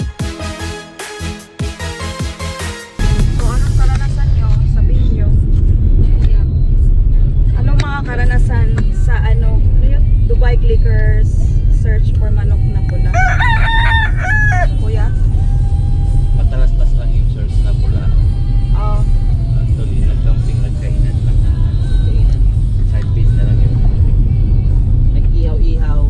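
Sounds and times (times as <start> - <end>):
road and engine rumble: 1.6 - 26.0
voices talking: 3.0 - 15.5.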